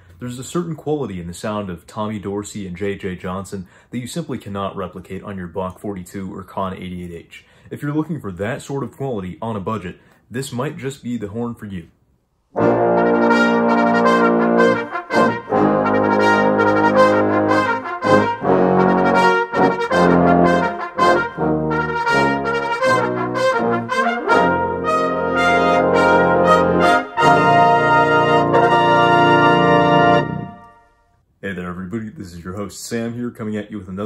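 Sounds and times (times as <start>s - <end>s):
trombone melody: 12.6s - 31.0s.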